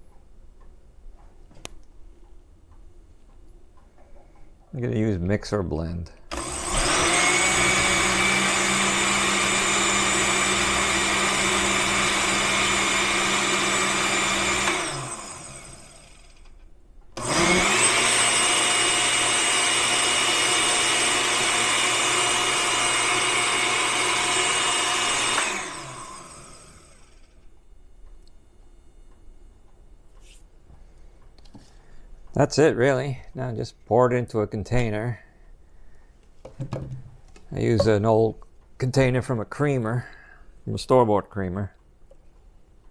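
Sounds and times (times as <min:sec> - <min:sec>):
blender running: 0:06.3 - 0:16.4, 0:17.2 - 0:27.4.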